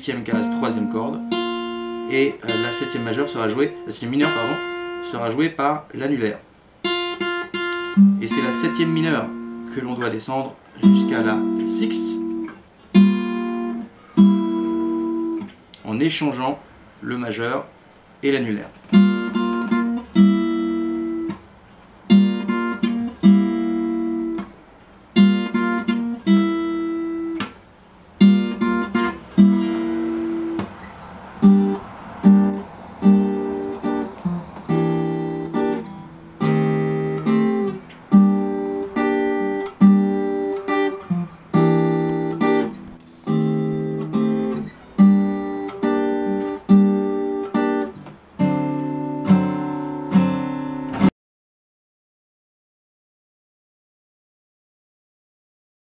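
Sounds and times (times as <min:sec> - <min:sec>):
acoustic guitar strumming: 0:00.0 - 0:15.8, 0:18.6 - 0:51.1.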